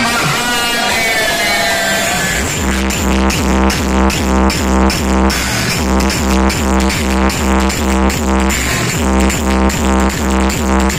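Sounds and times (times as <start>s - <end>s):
electronic dance music: 0.0s - 10.9s.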